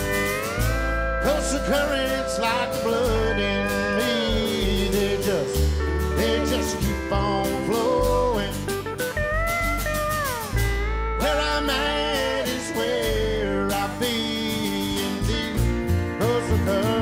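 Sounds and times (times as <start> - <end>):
pedal steel guitar: 0.0 - 17.0
strummed acoustic guitars: 0.0 - 17.0
upright bass: 0.0 - 17.0.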